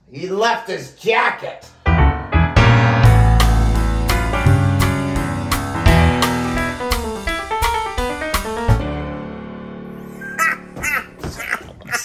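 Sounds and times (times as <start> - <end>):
boogie-woogie piano chord: 1.8 - 11.4
short squawky calls: 10.2 - 12.0.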